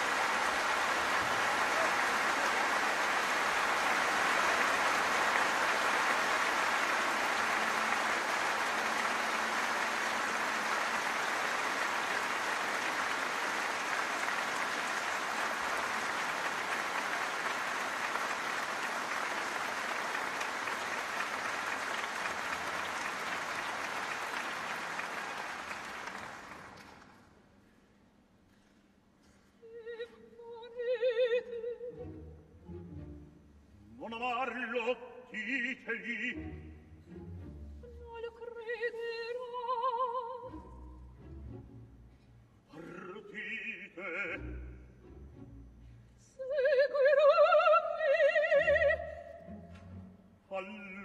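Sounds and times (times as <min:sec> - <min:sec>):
audience applauding: 0:00.0 - 0:27.4.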